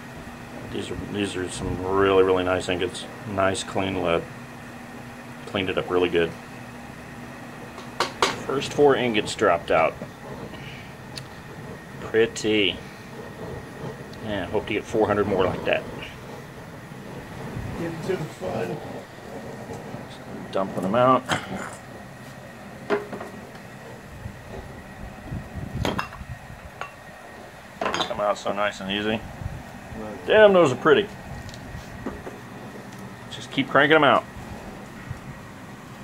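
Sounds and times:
propane burner roaring: 0:00.0 - 0:36.0.

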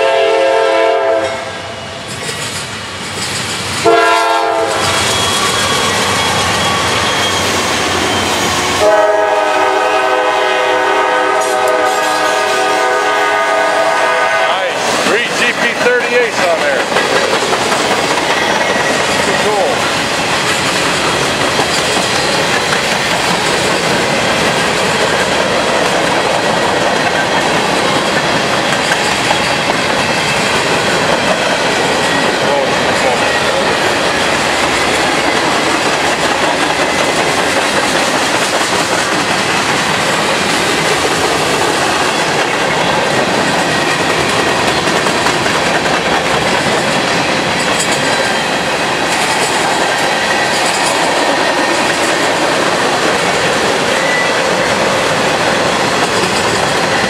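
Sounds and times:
train wheels rolling on rails: 0:00.0 - 0:57.0.

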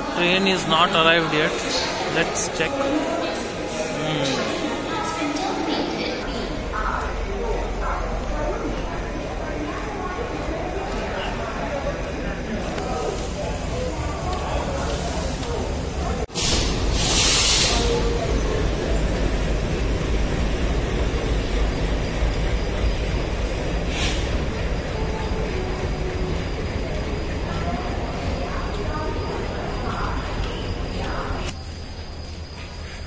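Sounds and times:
loud hiss: 0:16.3 - 0:18.1.

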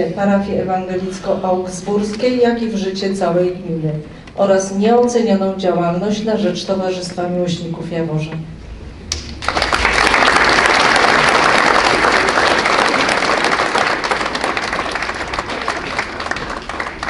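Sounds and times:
audience applauding: 0:09.1 - 0:17.0.

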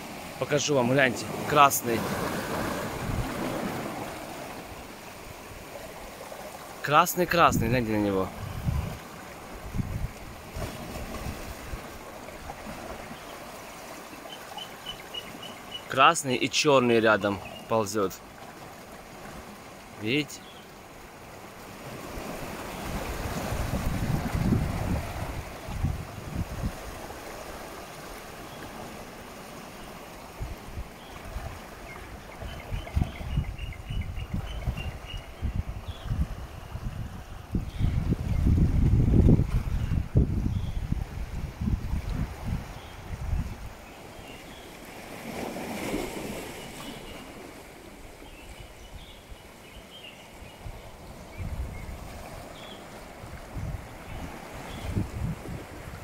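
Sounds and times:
sea surf: 0:00.0 - 0:56.0
wind buffeting microphone: 0:02.0 - 0:04.0, 0:07.5 - 0:11.9, 0:22.5 - 0:27.1, 0:32.4 - 0:43.9, 0:50.6 - 0:52.4, 0:53.2 - 0:56.0.

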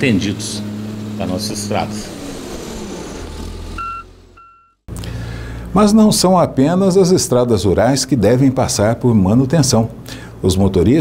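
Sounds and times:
diesel engine rumbling: 0:00.0 - 0:06.9
reversing alarm beeps: 0:03.8 - 0:04.8.

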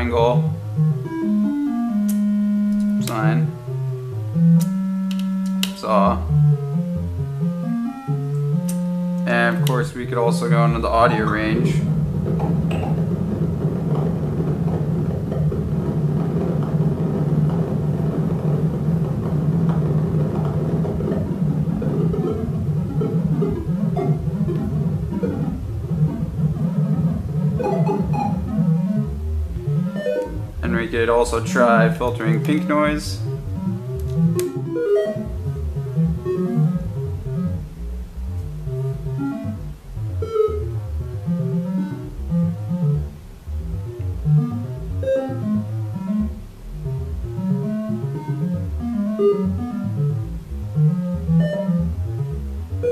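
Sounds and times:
synthesizer tone stepping pitches: 0:00.0 - 0:52.9.

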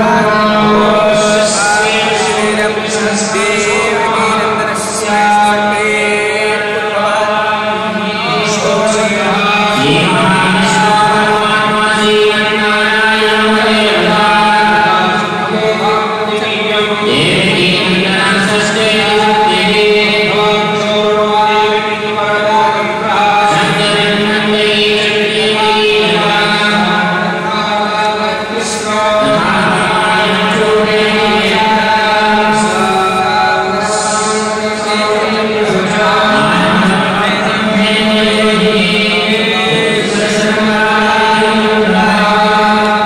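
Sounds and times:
men chanting in unison: 0:00.0 - 0:43.0.

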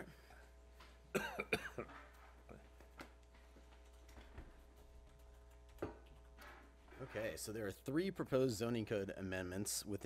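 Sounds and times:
man coughing: 0:01.1 - 0:02.0.

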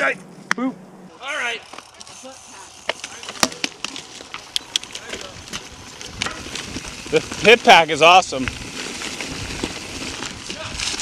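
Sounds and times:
bike tyres rushing over dirt trail: 0:01.2 - 0:11.0
bike clicks and rattles: 0:01.3 - 0:11.0.

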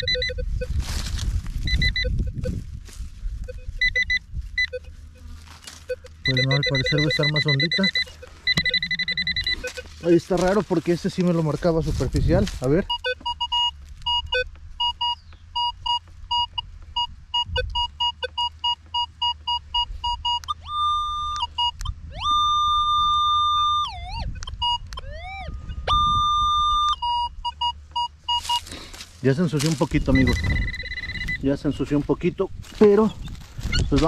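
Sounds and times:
metal detector beeps and tones: 0:00.0 - 0:02.7, 0:03.4 - 0:34.0.

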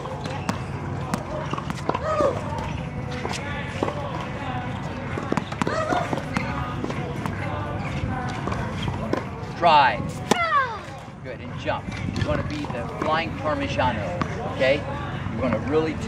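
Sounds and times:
faint voices: 0:00.0 - 0:16.0
tennis ball bouncing on hard court: 0:00.1 - 0:02.1.

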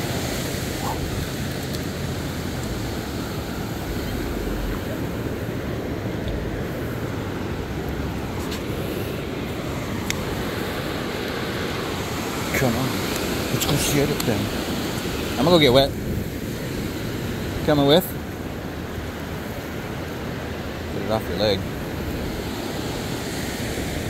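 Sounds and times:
ocean surf on a beach: 0:00.0 - 0:24.0.

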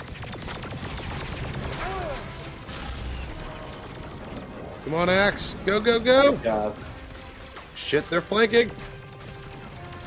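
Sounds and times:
blaster fire burst: 0:00.0 - 0:07.5.

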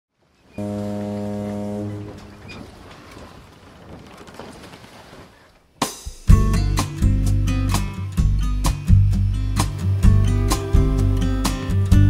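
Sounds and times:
low horn blast: 0:00.5 - 0:03.0, 0:09.0 - 0:12.0.

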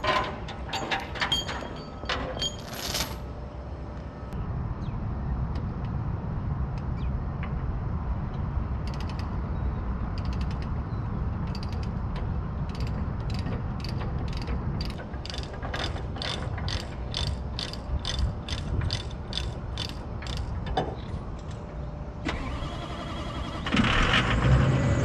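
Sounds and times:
ratchet clicks: 0:12.7 - 0:20.5.

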